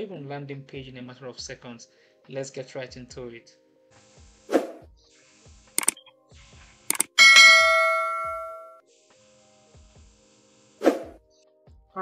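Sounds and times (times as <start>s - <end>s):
quick double clicks: 6.9s - 7.2s
bright bell ding: 7.0s - 8.8s.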